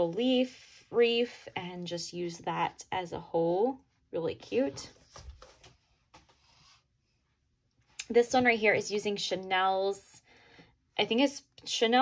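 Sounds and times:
paper page rustling and tapping: 4.9s - 6.6s.

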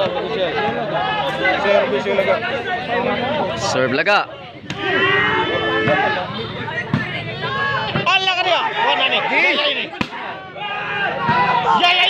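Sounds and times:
crowd and player voices: 0.0s - 12.0s.

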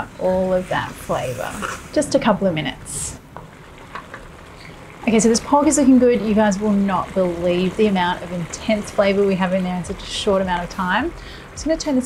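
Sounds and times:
sauce sizzling in a wok: 0.0s - 12.0s.

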